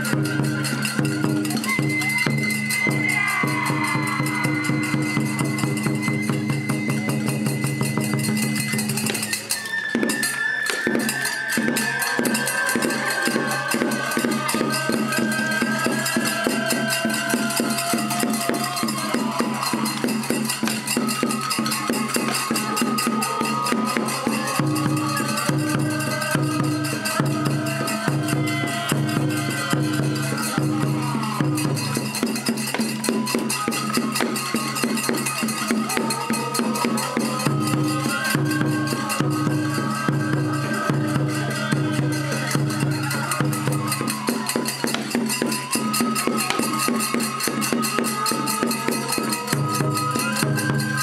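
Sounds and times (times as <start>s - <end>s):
percussion: 0.0s - 51.0s
taiko drum beating: 0.1s - 9.0s, 11.6s - 50.9s
high wind instrument melody: 8.3s - 51.0s.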